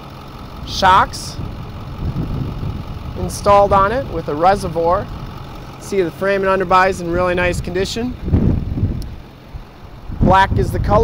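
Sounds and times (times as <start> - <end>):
wind buffeting microphone: 1.1 - 5.8, 7.0 - 11.0.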